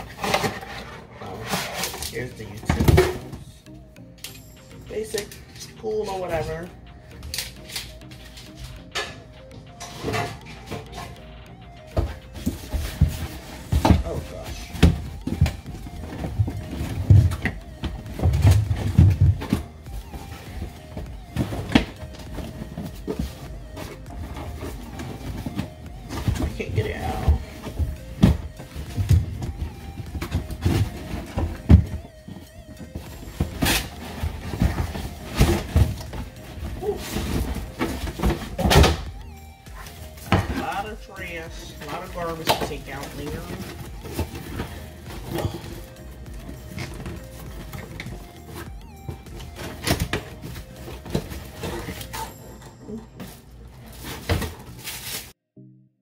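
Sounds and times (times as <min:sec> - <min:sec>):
background music: 0:00.0 - 0:56.0
cardboard scraping: 0:12.0 - 0:39.1, 0:39.7 - 0:52.4, 0:53.3 - 0:55.4
knocks and thuds from box: 0:12.0 - 0:39.2.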